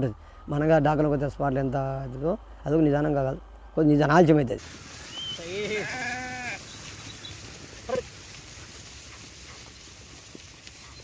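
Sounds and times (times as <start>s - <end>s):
sheep bleating: 5.3s - 6.7s.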